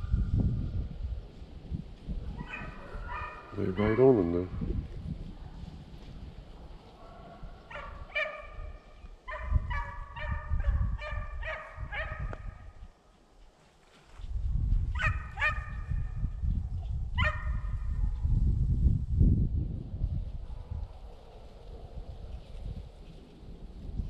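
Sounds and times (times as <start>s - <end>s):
wind rumble on microphone: 0.0s - 13.0s, 13.9s - 24.0s
hounds barking: 2.3s - 4.3s, 6.5s - 12.6s, 14.9s - 15.9s, 17.2s - 18.2s.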